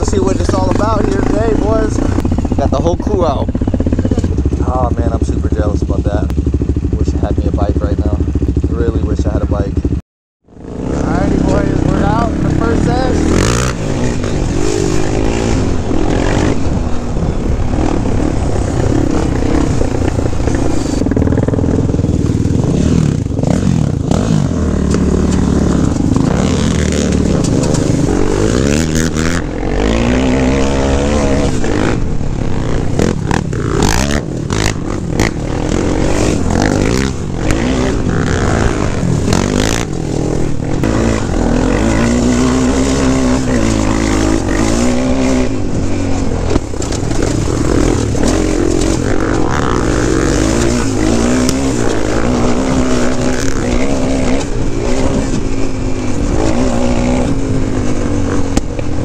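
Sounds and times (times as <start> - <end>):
quad engine revving: 0.0 - 9.9, 10.5 - 59.0
wind rumble on microphone: 10.8 - 59.0.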